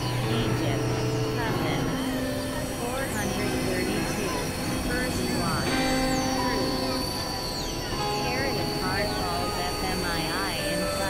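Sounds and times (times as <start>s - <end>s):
gliding synth pitch sweeps: 0.0s - 11.0s
synthesizer drone music: 0.0s - 11.0s.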